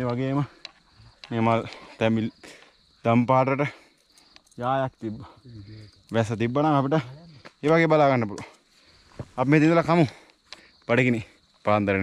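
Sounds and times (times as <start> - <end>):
insect trilling: 0.0 - 12.0.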